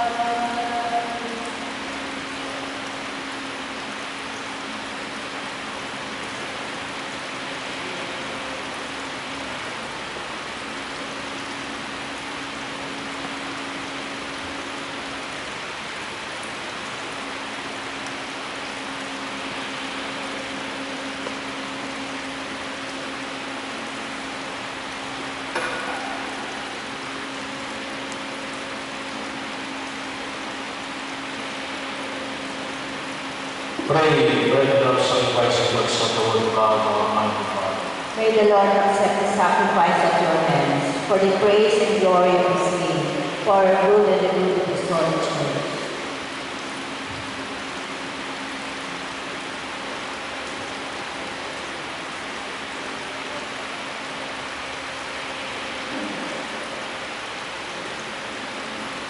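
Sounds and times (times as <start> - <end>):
steady hiss: 0.0 - 59.0.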